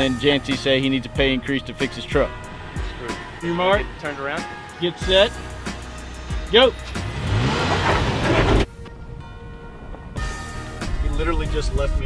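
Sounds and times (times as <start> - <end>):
pickup engine revving: 0.0 - 8.7.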